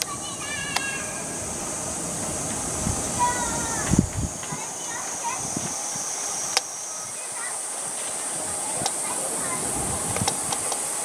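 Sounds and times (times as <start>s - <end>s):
distant electric train rumble: 0.0s - 11.0s
high-pitched hiss: 0.0s - 11.0s.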